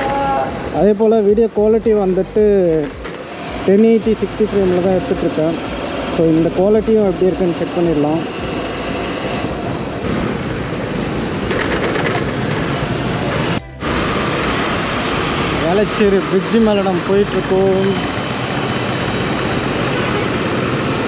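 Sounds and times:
man talking: 0.0 - 3.0, 3.7 - 5.6, 6.2 - 8.3, 15.6 - 18.0
road and wind noise: 0.0 - 21.0
motorcycle engine: 2.8 - 21.0.

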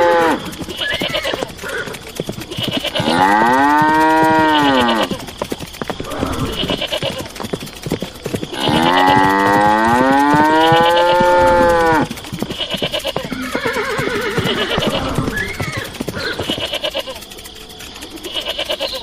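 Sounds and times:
cow mooing: 0.0 - 0.5, 2.6 - 5.1, 8.5 - 12.1
wavering animal calls: 0.0 - 7.4, 8.0 - 19.0.

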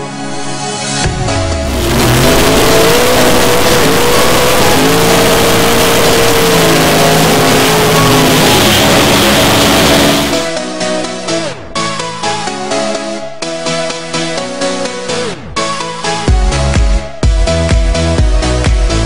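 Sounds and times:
music: 0.0 - 19.0
racing car engine at high revs: 1.5 - 10.5.

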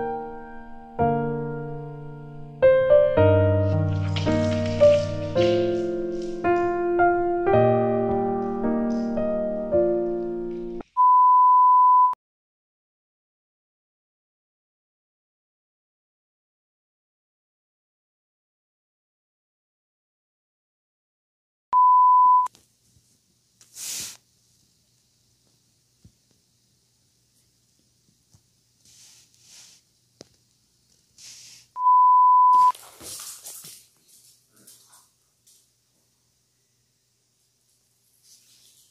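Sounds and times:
piano background music: 0.0 - 10.8
dog scuffling with rubber ball: 3.7 - 6.8, 32.7 - 35.1
steady electronic beep: 21.8 - 22.5, 31.8 - 32.7.

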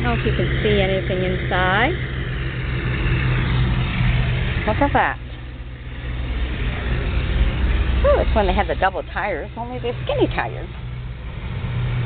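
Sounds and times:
low engine hum: 0.0 - 12.0
outdoor background noise: 0.0 - 12.0.

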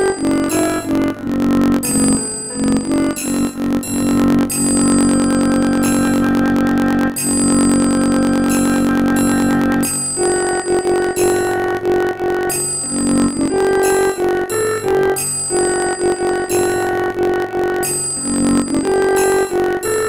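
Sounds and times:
synthesized single-line melody: 0.0 - 20.0.

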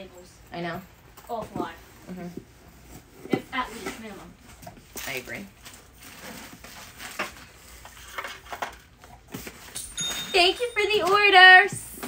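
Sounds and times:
packaging rustling and crinkling: 4.9 - 9.8.

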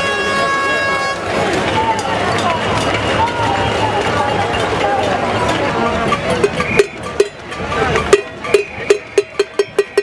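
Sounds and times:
metal pot banging: 6.4 - 10.0.

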